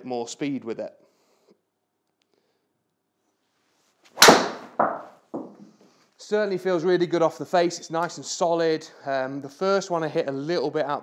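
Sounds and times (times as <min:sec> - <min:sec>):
golf driver striking ball: 0:04.2 - 0:05.1.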